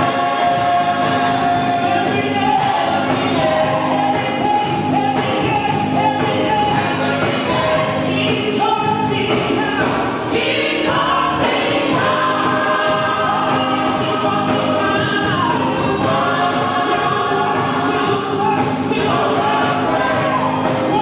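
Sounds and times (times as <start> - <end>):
group singing gospel: 0.0 - 21.0
instrumental backing: 0.0 - 21.0.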